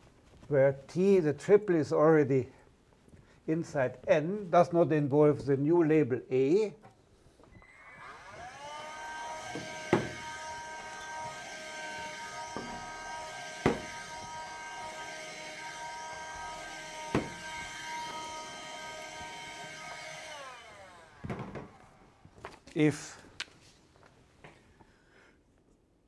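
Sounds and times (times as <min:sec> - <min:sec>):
handheld vacuum motor whine: 0:07.5 - 0:22.6
knocks on board: 0:13.6 - 0:13.9.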